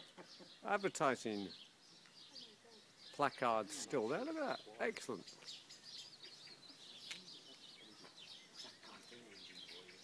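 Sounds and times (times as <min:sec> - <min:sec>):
small birds chirping: 0:00.0 - 0:10.0.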